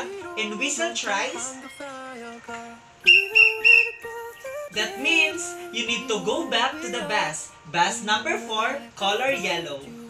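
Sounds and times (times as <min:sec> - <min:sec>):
background music: 0:00.0 - 0:10.0
whistle blasts: 0:03.0 - 0:04.6.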